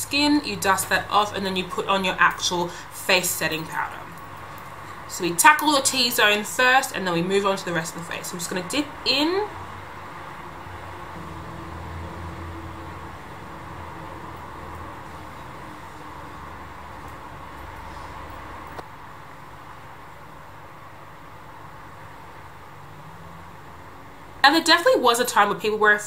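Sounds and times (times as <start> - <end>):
low hum: 7.2 - 24.4.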